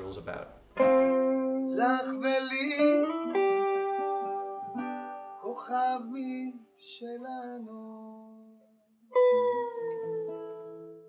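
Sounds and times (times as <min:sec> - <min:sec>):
two guitars playing: 0:00.6 - 0:11.0.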